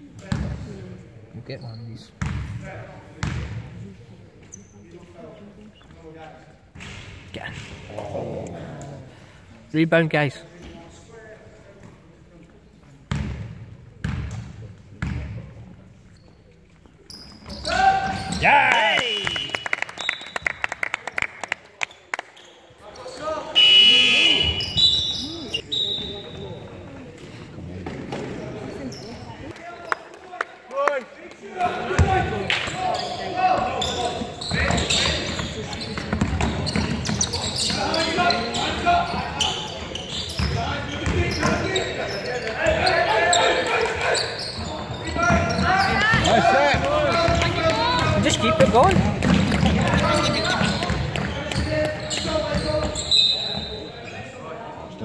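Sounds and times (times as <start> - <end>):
indistinct voices: 7.8 - 9.5
basketball bouncing on floor: 46.1 - 52.9.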